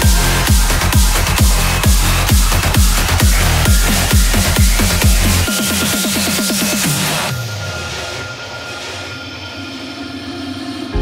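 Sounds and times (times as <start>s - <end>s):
sustained synth pads: 0.0s - 11.0s.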